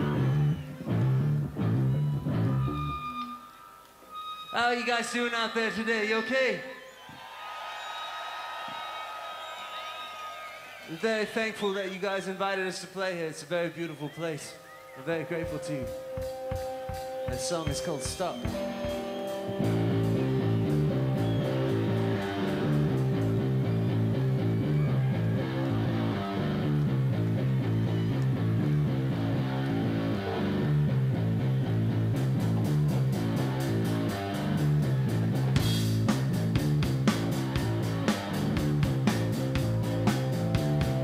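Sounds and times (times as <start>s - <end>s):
electric guitar: 0.0s - 3.2s, 15.8s - 41.0s
electric bass riff: 0.0s - 3.3s, 15.6s - 41.0s
drums and cymbals: 15.3s - 23.6s, 32.2s - 41.0s.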